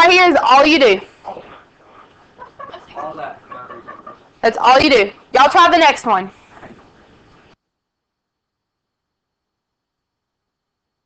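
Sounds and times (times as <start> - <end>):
teacher's voice: 4.4 - 6.3.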